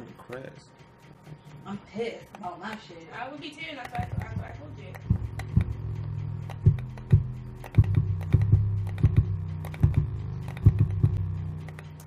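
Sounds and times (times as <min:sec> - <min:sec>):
light pad taps: 0:03.8 - 0:12.0
deep bass notes: 0:04.0 - 0:11.7.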